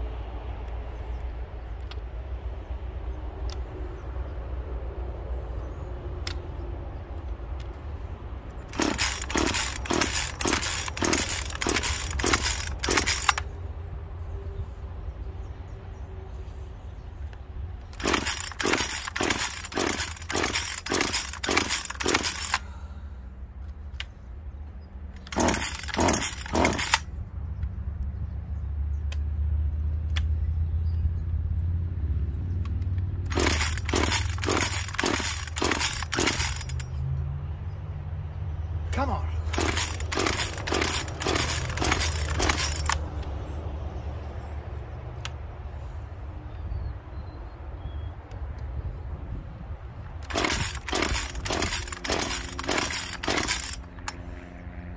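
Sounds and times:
chainsaw pull-start cranking: 8.7 - 13.4, 17.9 - 22.8, 25.2 - 27.1, 33.3 - 36.9, 39.4 - 43.0, 50.2 - 54.2.

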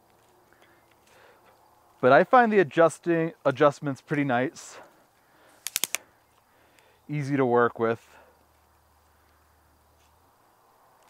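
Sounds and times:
tripod legs clicking: 5.6 - 6.0.

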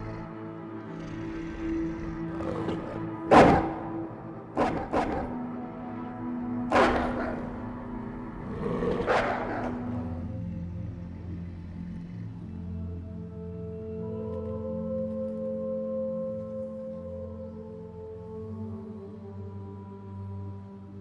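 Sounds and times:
dramatic film score: 0.0 - 21.0.

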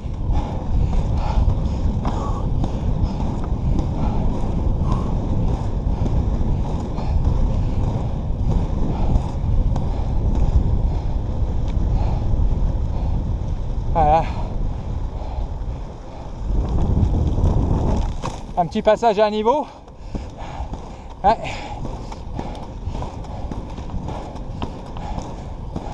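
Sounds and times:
skate wheels rolling on asphalt: 0.0 - 25.9
wind buffeting microphone: 0.0 - 25.9.

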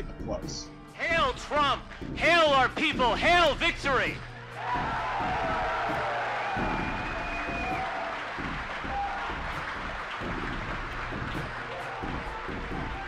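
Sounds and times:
music playing: 0.0 - 13.0
crowd applauding and cheering: 3.4 - 13.0.

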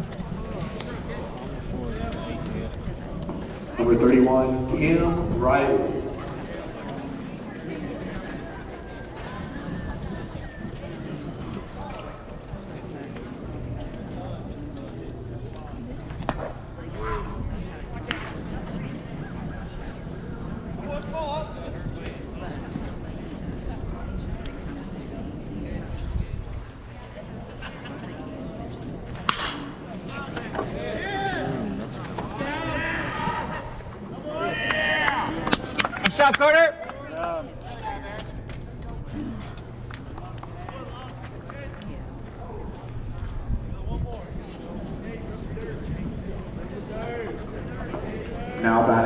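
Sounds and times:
crowd murmur: 0.0 - 49.0
faint spectator chatter: 0.0 - 49.0
baseball bat smack: 29.2 - 29.6
sharp crack: 29.2 - 29.7.

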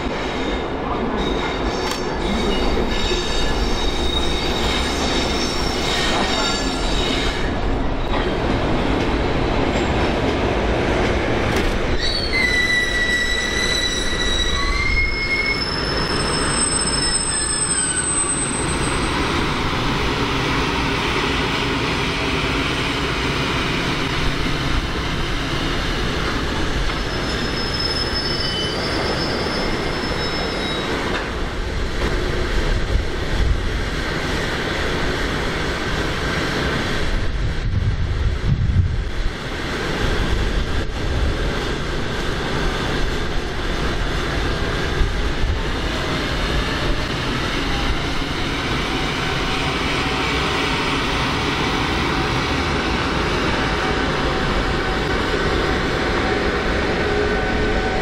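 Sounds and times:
wheels rumbling on rail: 0.0 - 58.0
wheels squealing: 12.0 - 19.3, 26.9 - 31.1.

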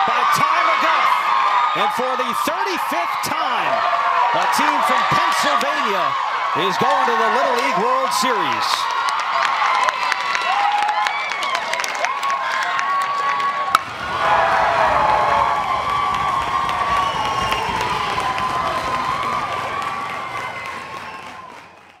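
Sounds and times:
crowd cheering and shouting: 0.0 - 22.0
children whooping: 9.0 - 22.0.

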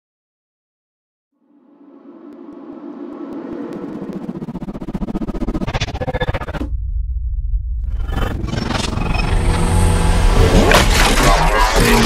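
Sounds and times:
rising whoosh: 1.5 - 10.5
electronic music with deep rumble: 2.1 - 12.0.

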